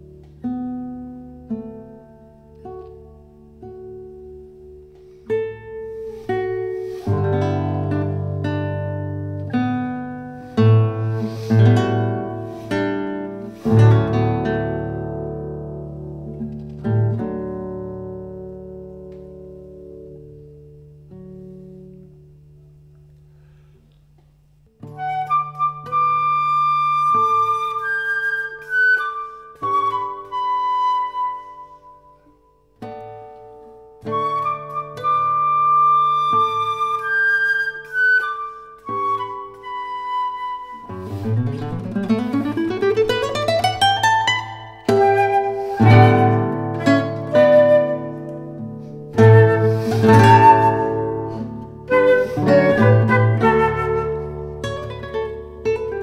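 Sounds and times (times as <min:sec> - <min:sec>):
flute long held notes: 0:24.9 - 0:32.3, 0:34.0 - 0:41.6, 0:44.5 - 0:55.2
plucked guitar chords: 0:41.0 - 0:56.0.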